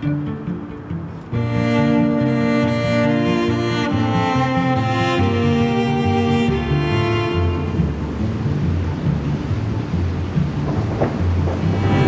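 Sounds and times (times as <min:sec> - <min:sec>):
steady rushing noise: 0:00.0 - 0:12.0
low pulsing bass: 0:00.2 - 0:12.0.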